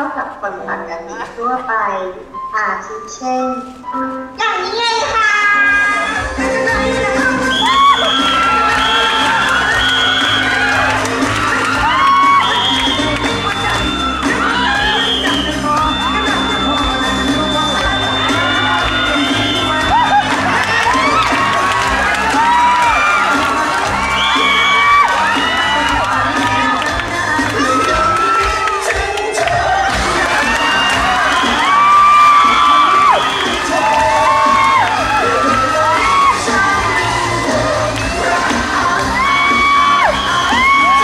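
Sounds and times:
crowd cheering and shouting: 0:05.1 - 0:41.0
song with held sung notes: 0:05.7 - 0:31.8, 0:32.4 - 0:41.0.

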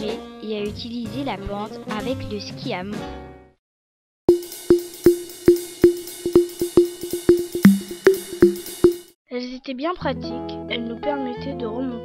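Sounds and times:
hissing hi-hat and cymbal: 0:04.3 - 0:09.1
tuned drum hits: 0:04.3 - 0:09.1.

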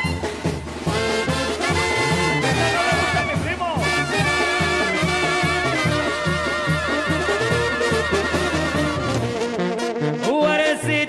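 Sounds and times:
brass band playing: 0:00.0 - 0:11.0.

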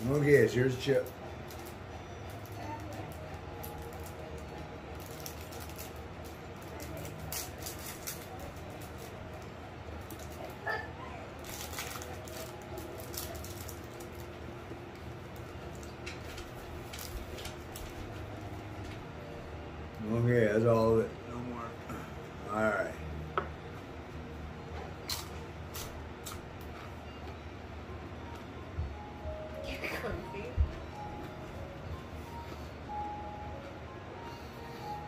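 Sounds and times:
foil wrapper crinkling: 0:00.0 - 0:10.6, 0:11.4 - 0:18.9
steady low hum: 0:00.0 - 0:35.0.

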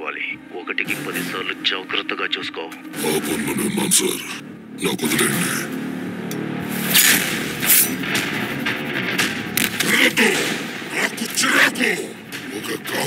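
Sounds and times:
tense score with low tones: 0:00.0 - 0:13.0
sharp percussive hits: 0:06.3 - 0:13.0.

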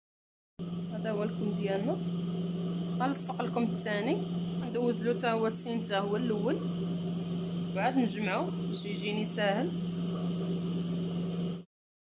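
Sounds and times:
sewing machine motor hum: 0:00.6 - 0:11.7.

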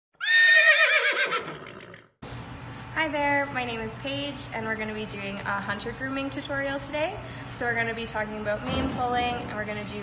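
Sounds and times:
horse whinnying: 0:00.2 - 0:02.1.

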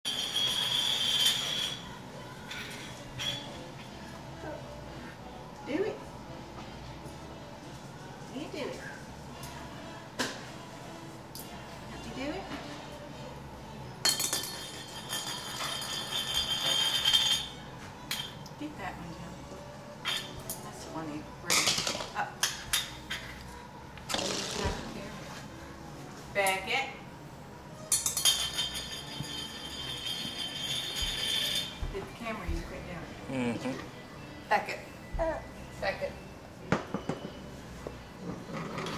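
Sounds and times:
metal ring spinning on tile floor: 0:00.1 - 0:03.8, 0:14.0 - 0:18.5, 0:24.1 - 0:25.1, 0:27.8 - 0:32.0, 0:38.2 - 0:38.9.

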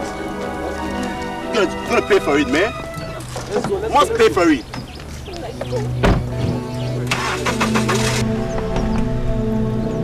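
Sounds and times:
background music: 0:00.0 - 0:10.0
car engine cranking and starting: 0:06.2 - 0:09.2.

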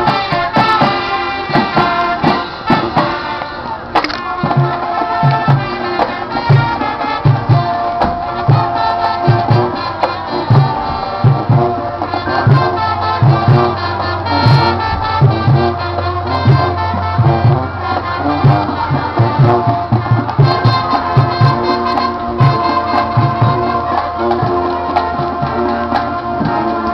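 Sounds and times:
marching band brass: 0:00.0 - 0:26.9.

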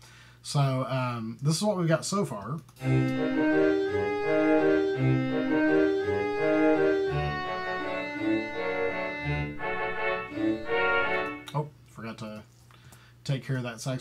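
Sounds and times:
clarinets and saxophones melody: 0:02.8 - 0:11.6
low bass notes: 0:02.8 - 0:11.6.

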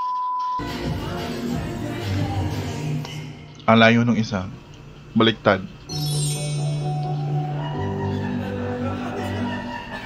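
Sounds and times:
music: 0:00.6 - 0:03.6, 0:05.9 - 0:10.0.

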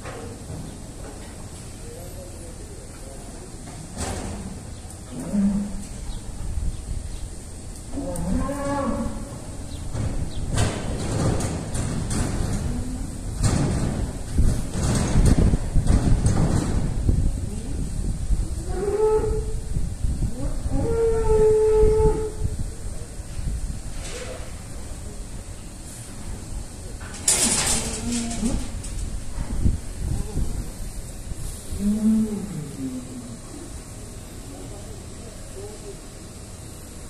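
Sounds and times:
young cattle mooing: 0:07.9 - 0:09.4, 0:20.3 - 0:22.4.

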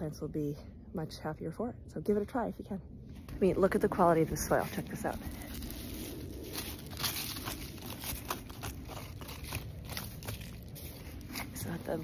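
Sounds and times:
dry leaves crunching: 0:03.9 - 0:12.0.

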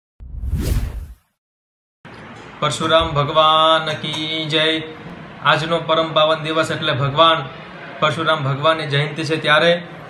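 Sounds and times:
whoosh: 0:00.2 - 0:01.3.

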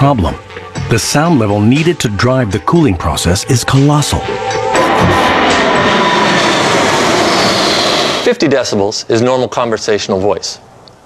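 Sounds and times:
jet airliner passing overhead: 0:04.3 - 0:08.4.

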